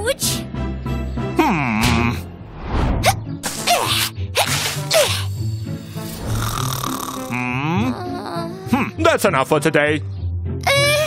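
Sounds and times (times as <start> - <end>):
background music: 0.0 - 11.0
cartoon snoring: 6.0 - 8.9.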